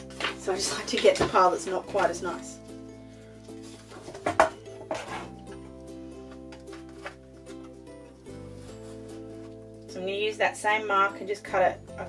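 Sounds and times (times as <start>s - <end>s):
paper rustling and tapping: 0.0s - 2.5s, 3.5s - 7.8s
soft background music: 0.0s - 12.0s.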